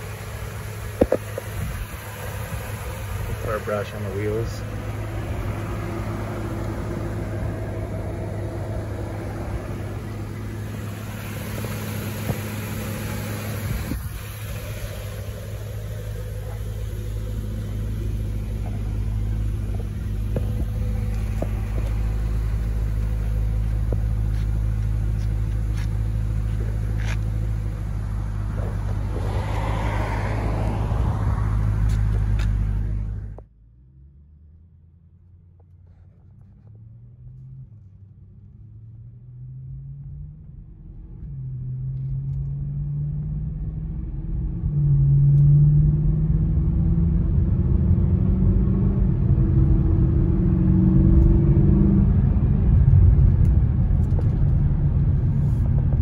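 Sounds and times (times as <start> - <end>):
car engine idling: 0.0 - 39.0, 52.0 - 56.0.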